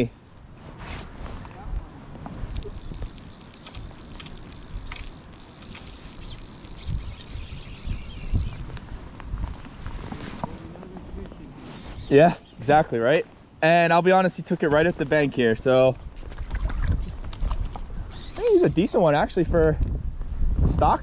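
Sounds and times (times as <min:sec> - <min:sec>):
fly reel clicking: 0:02.4 - 0:08.8, 0:11.5 - 0:12.7, 0:18.1 - 0:19.0
wind rumble on microphone: 0:06.2 - 0:11.4, 0:15.9 - 0:21.0.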